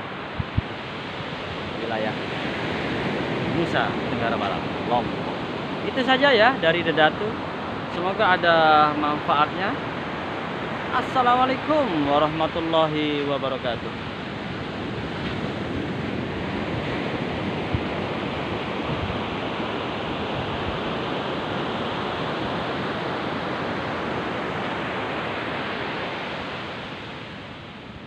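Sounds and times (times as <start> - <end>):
wind on microphone: 0.0 - 8.1, 13.8 - 28.0.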